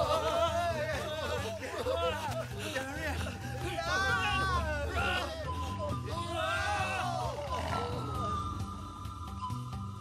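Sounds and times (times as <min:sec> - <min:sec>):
men yelling: 0:00.0 - 0:09.4
dramatic music: 0:03.0 - 0:10.0.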